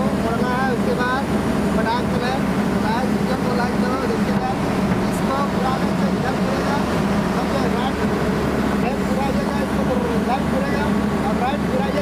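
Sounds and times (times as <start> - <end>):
excavator diesel engine running: 0.0 - 12.0.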